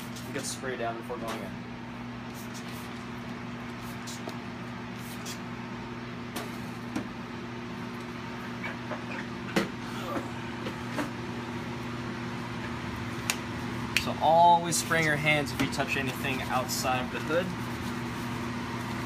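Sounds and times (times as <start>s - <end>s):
blower fan humming: 0.0s - 19.0s.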